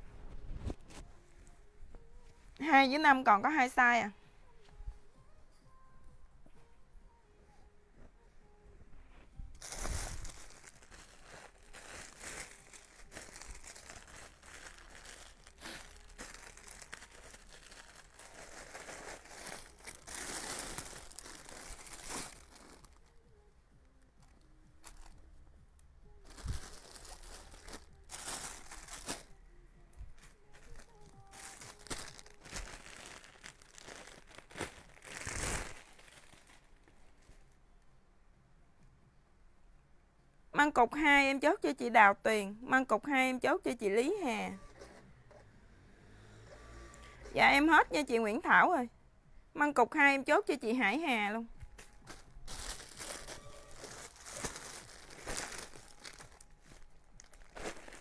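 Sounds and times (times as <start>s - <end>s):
plastic packaging crinkling: 9.6s - 23.1s, 26.2s - 29.4s, 30.2s - 37.5s, 51.7s - 58.0s
clothing rustling: 30.0s - 37.6s, 51.7s - 58.0s.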